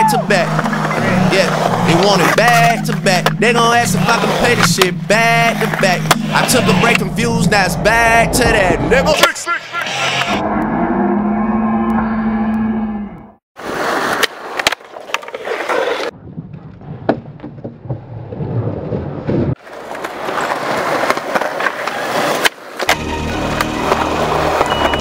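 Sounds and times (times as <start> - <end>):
skateboard wheels rolling: 13.6 - 25.0
skateboard clacks: 19.6 - 25.0.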